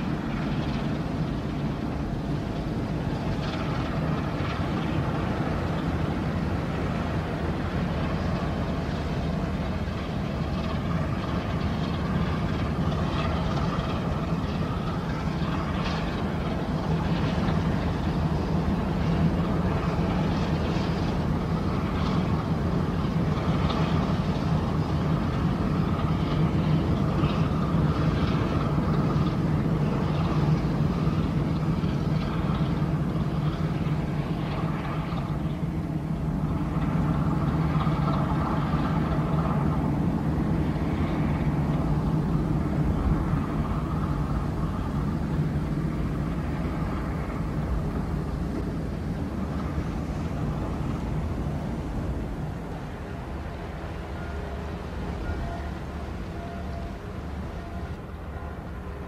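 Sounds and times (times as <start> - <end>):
barge diesel engine drone: 0.0 - 59.0.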